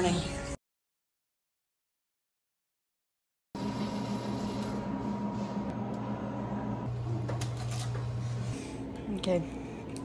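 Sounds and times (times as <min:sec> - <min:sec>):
indoor machine hum: 0:03.6 - 0:10.0.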